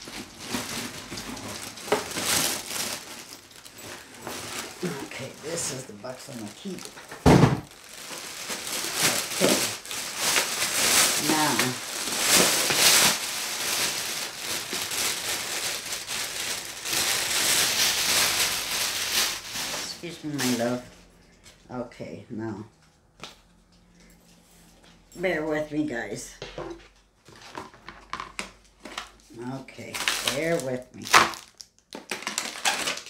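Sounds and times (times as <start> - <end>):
plastic wrapping crinkling: 0.0 - 20.9, 27.2 - 33.0.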